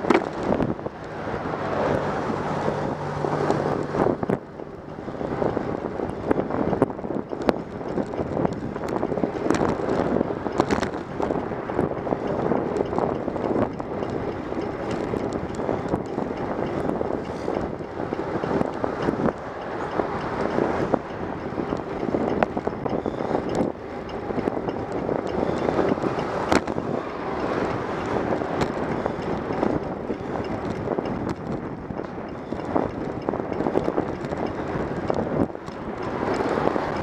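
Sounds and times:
tyre and road noise: 0.0 - 37.0
wind rushing over microphone: 0.0 - 37.0.

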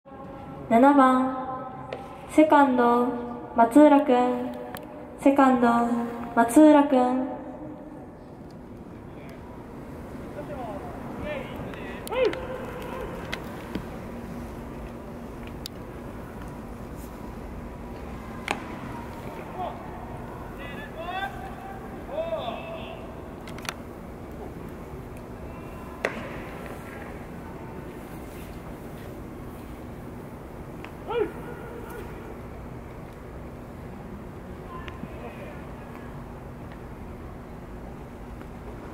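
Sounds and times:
ballpark background noise: 0.1 - 38.9
loud shouted call: 11.2 - 13.3, 18.8 - 23.2, 31.0 - 32.3.

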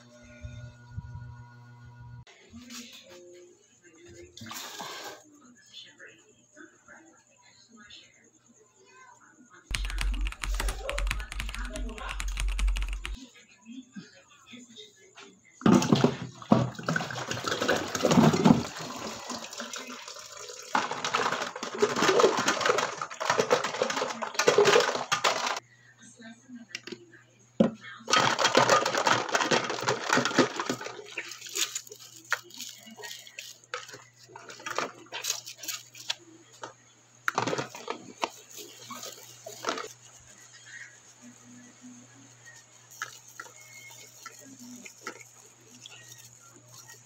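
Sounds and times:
plastic parts clattering in water: 15.6 - 25.6, 28.1 - 36.7, 37.3 - 39.9
plastic jug crackling: 15.7 - 25.6, 28.1 - 36.7, 37.3 - 40.5, 42.9 - 47.0.

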